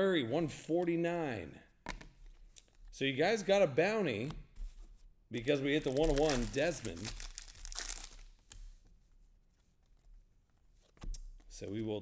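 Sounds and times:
foil wrapper crinkling: 0:05.8 - 0:08.4.

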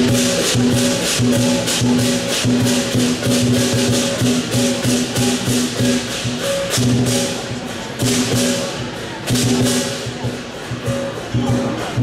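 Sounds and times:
crashing cymbals: 0:00.0 - 0:12.0
drum beating: 0:00.0 - 0:12.0
gong: 0:00.0 - 0:12.0.

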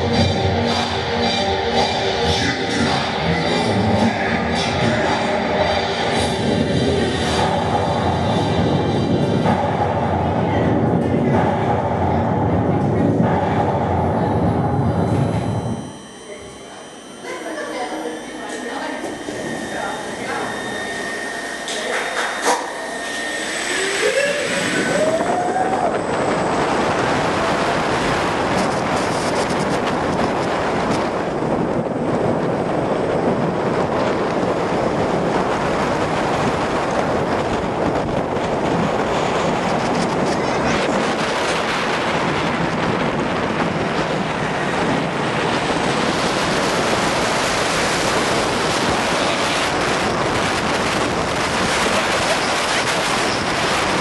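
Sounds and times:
roller coaster wheels rumbling: 0:00.0 - 0:15.8, 0:19.1 - 0:54.0.

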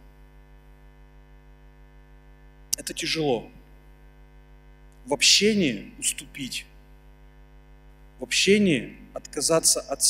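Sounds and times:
electrical mains hum: 0:00.0 - 0:10.0
man's voice: 0:02.8 - 0:03.5, 0:05.1 - 0:06.6, 0:08.2 - 0:10.0.

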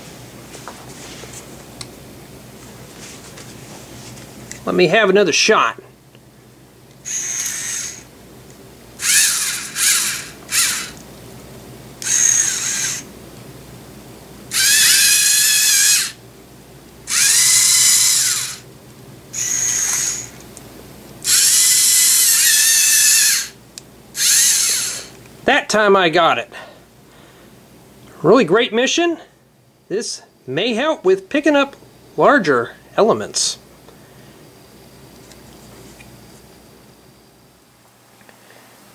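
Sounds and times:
small servo motors whirring: 0:07.0 - 0:08.1, 0:09.0 - 0:11.0, 0:12.0 - 0:13.1, 0:14.5 - 0:16.2, 0:17.1 - 0:18.6, 0:19.4 - 0:20.4, 0:21.2 - 0:23.6, 0:24.2 - 0:25.2.

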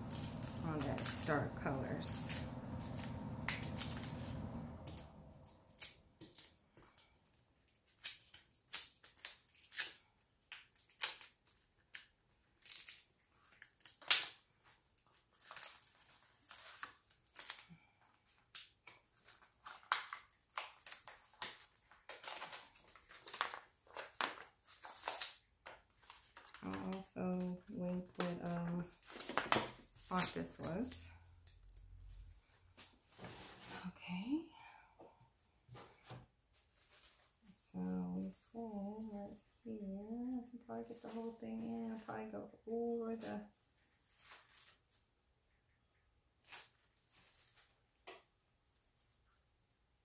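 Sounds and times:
steady low hum: 0:00.0 - 0:06.2
tape peeling and crinkling: 0:00.0 - 0:33.0, 0:42.9 - 0:45.0, 0:46.4 - 0:48.2.

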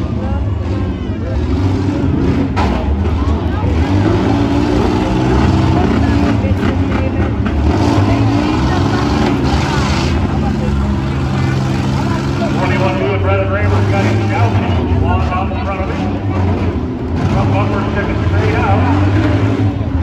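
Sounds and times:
engines revving: 0:00.0 - 0:20.0.

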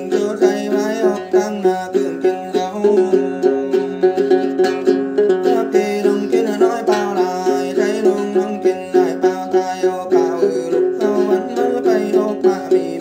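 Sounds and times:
man singing: 0:00.0 - 0:13.0
plucked lute: 0:00.0 - 0:13.0.

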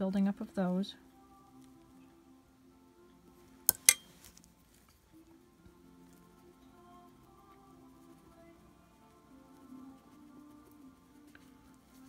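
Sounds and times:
faint music of held tones: 0:00.0 - 0:12.0
sharp clinks: 0:03.7 - 0:04.1.

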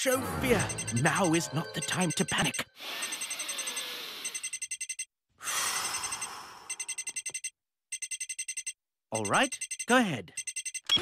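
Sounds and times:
electronic phone ringing trill: 0:00.3 - 0:05.1, 0:05.8 - 0:11.0.

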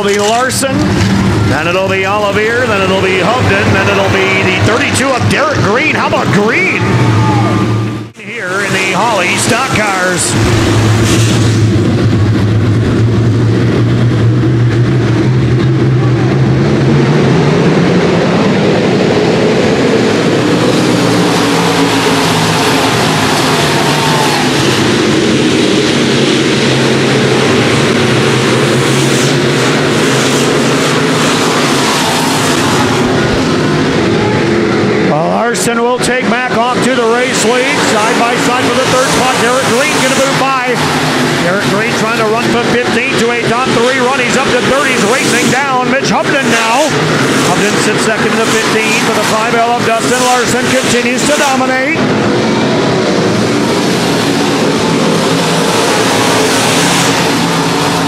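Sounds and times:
racing car engines: 0:00.0 - 0:58.0.

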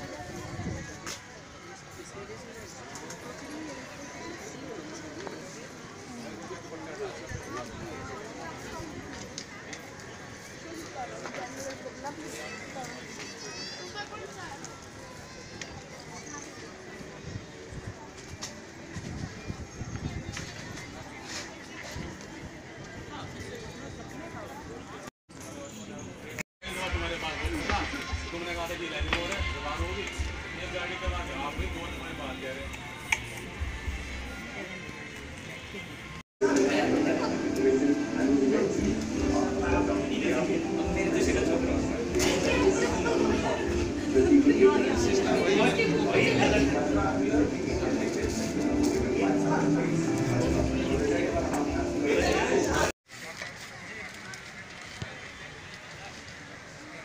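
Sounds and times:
faint background voices: 0:00.0 - 0:57.0
background music: 0:36.4 - 0:52.9.

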